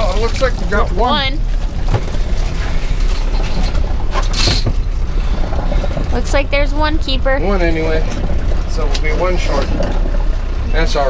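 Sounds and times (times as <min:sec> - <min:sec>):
wind rumble on microphone: 0:00.0 - 0:11.0
wire crab pot creaking and rattling: 0:00.0 - 0:11.0.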